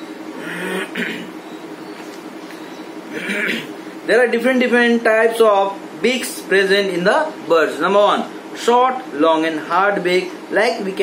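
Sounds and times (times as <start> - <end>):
man clearing his throat: 0.4 - 1.4, 3.1 - 3.8.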